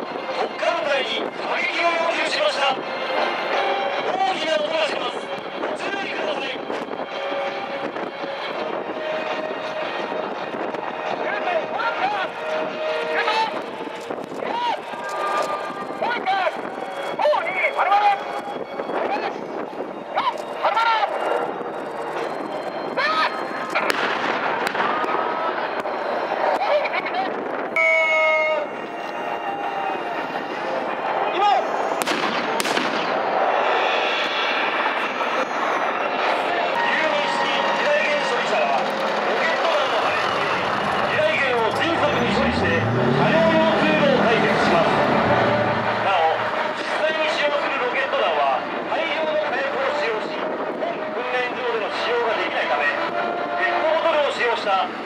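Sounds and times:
gunfire and blasts: 32.0 - 33.2
tracked vehicle engine revving: 38.0 - 47.4.

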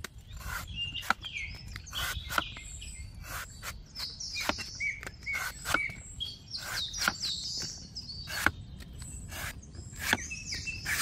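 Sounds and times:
cleaver chopping coconut husk: 0.0 - 6.0, 6.6 - 11.0
small birds chirping: 0.0 - 11.0.

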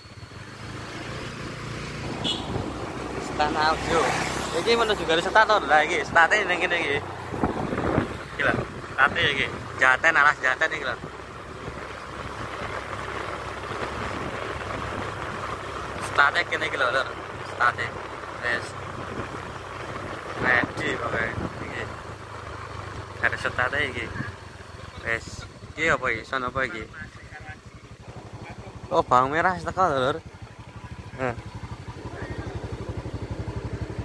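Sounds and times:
low vehicle rumble: 0.0 - 34.0
wind rushing over microphone: 5.9 - 9.8, 20.0 - 22.0.

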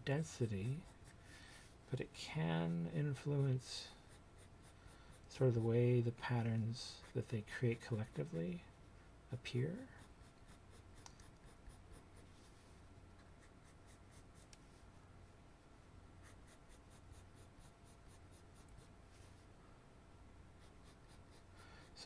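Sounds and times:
pencil scratching on paper: 0.4 - 1.8, 2.4 - 5.6, 6.9 - 8.4, 9.8 - 12.5, 13.2 - 14.6, 16.2 - 19.0, 20.6 - 22.0.

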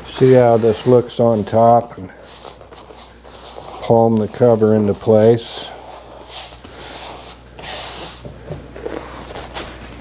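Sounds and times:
hands rubbing vinyl cover: 0.2 - 10.0.

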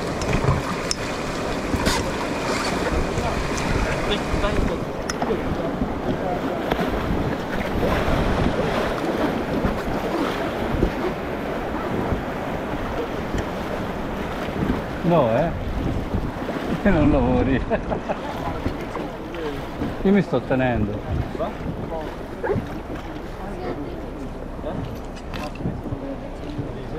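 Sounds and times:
sharp water splashes: 0.0 - 17.0
rushing river water: 0.0 - 26.9
wind buffeting microphone: 0.0 - 26.9.

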